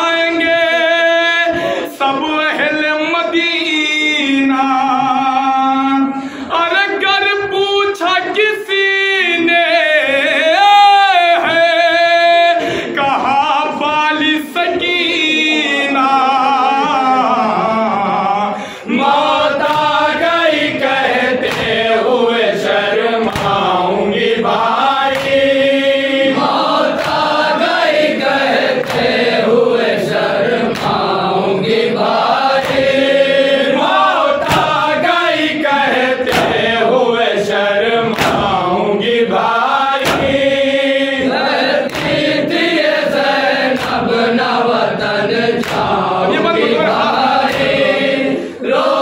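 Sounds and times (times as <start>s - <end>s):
men chanting in unison: 0.0s - 49.0s
hands slapping chests: 19.1s - 21.8s, 23.2s - 23.8s, 24.6s - 25.7s, 26.4s - 29.4s, 30.6s - 31.2s, 32.2s - 33.2s, 33.9s - 35.5s, 36.2s - 36.7s, 38.0s - 38.7s, 39.9s - 40.7s, 41.4s - 44.2s, 45.5s - 48.1s.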